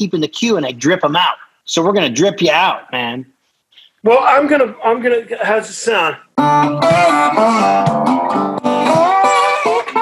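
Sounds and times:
resonator guitar chords: 6.4s - 10.0s.

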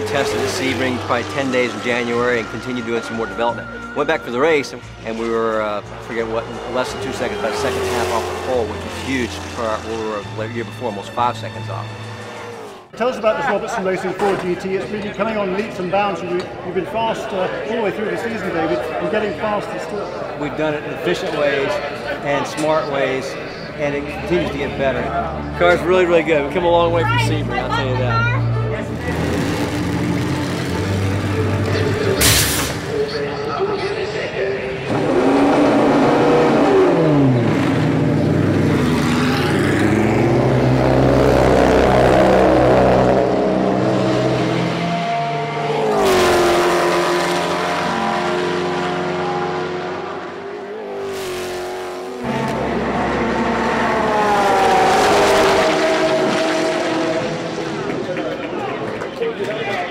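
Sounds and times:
race car engines at speed: 0.0s - 59.9s.

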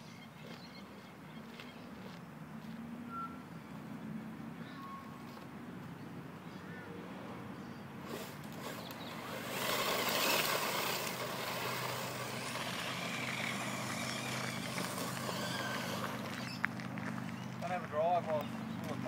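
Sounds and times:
toy buggy driving over gravel: 8.0s - 19.0s
tyres spraying grit: 8.1s - 16.8s.

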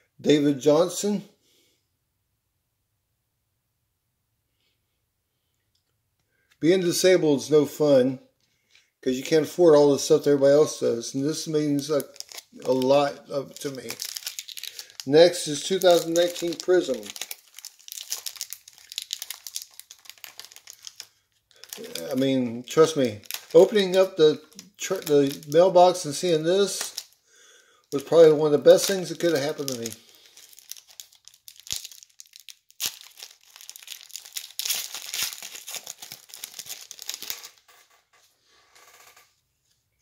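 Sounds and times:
foil wrapper crinkling and tearing: 11.3s - 27.2s, 28.0s - 37.7s.

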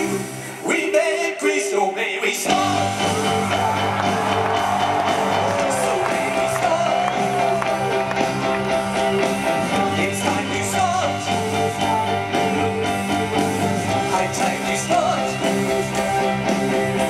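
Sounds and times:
live rock band playing: 2.5s - 17.0s.

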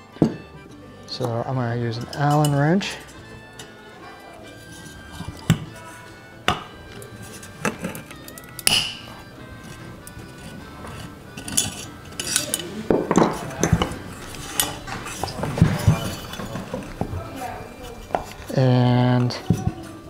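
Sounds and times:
background music: 0.0s - 20.0s
metal fan cage rattling: 7.1s - 20.0s.

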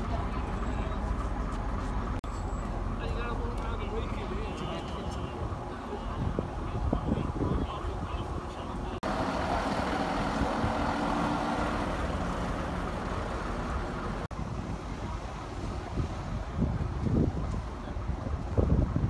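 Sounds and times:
bus engine running: 0.0s - 19.0s.

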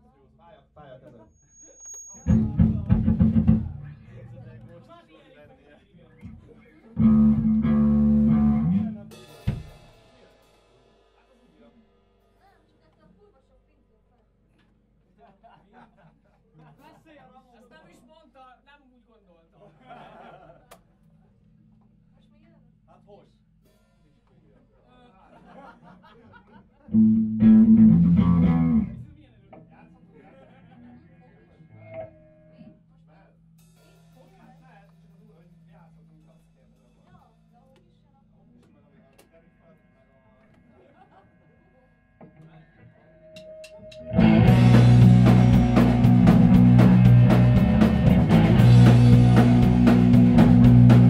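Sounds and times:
quiet chatter: 0.0s - 27.0s, 28.8s - 44.2s
drum and cymbal hit: 2.3s - 4.0s, 7.0s - 12.1s, 33.6s - 34.9s, 43.4s - 51.0s
distorted electric guitar and bass chord: 2.3s - 4.7s, 7.0s - 9.1s, 26.9s - 29.1s, 44.0s - 51.0s.

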